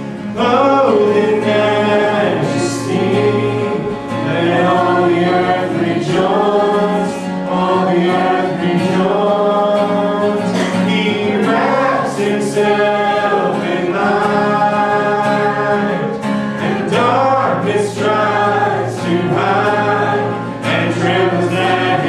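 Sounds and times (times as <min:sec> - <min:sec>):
people singing together: 0:00.0 - 0:22.0
worship band playing: 0:00.0 - 0:22.0.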